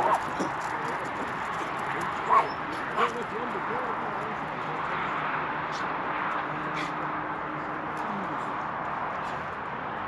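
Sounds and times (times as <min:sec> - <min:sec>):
faint voices talking: 0:00.4 - 0:06.0.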